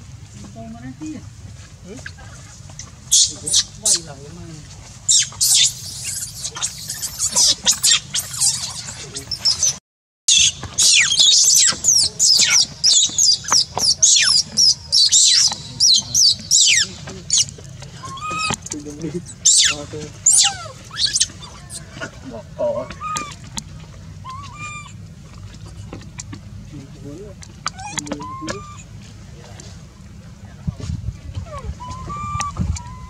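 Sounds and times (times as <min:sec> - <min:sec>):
baby monkey screaming: 0:03.1 - 0:04.2, 0:05.1 - 0:22.1, 0:22.8 - 0:23.4, 0:24.2 - 0:25.0, 0:27.7 - 0:28.9, 0:31.5 - 0:33.0.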